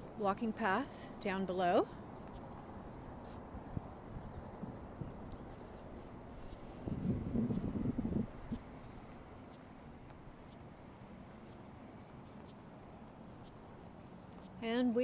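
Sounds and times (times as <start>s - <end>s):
footsteps on glass deck: 5.4s - 14.6s.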